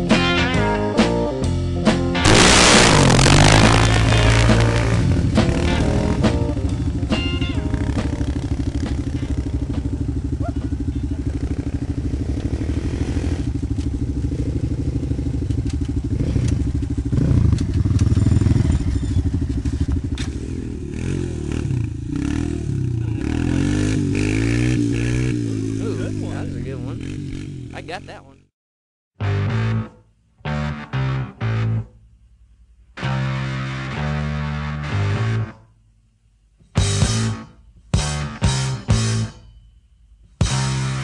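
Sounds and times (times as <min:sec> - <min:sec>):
atv engine running and revving: 0:02.2 - 0:28.1.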